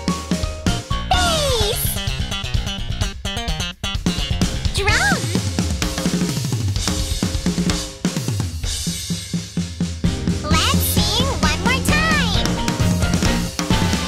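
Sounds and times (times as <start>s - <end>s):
bass riff: 0.7s - 5.4s, 10.1s - 13.9s
drum and cymbal hits: 4.0s - 14.0s.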